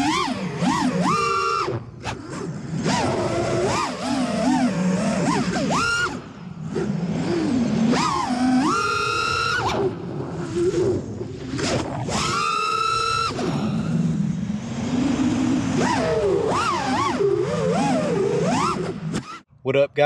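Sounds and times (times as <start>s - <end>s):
drone motors whining: 0.0s - 19.5s.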